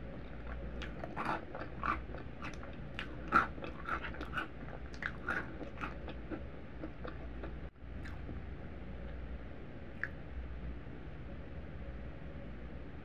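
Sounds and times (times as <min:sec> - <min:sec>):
chewing crunchy food: 0:00.0 - 0:08.4.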